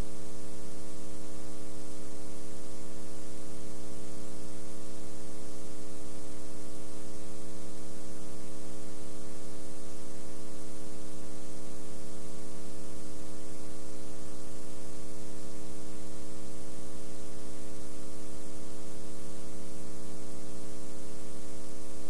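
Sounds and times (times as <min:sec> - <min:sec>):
electrical mains hum: 0:00.0 - 0:22.0
tape hiss: 0:00.0 - 0:22.0.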